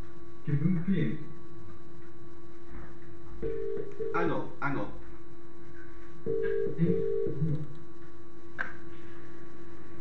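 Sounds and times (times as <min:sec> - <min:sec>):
electronic telephone line tone: 0:02.7 - 0:05.0, 0:05.7 - 0:07.7.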